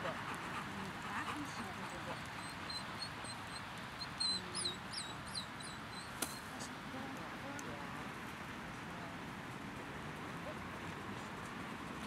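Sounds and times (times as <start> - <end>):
small bird chirping: 2.1 - 6.5.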